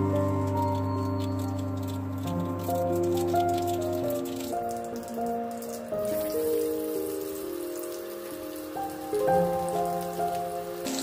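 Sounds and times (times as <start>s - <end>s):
background music with melody: 0.0s - 11.0s
mustard seeds crackling in oil: 0.0s - 11.0s
shallots sizzling in oil: 0.0s - 11.0s.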